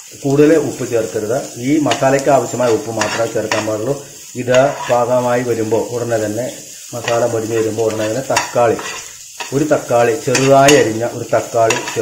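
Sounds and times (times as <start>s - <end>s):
masala sizzling in pan: 0.0s - 12.0s
spoon scraping pan: 1.9s - 5.6s, 6.9s - 12.0s.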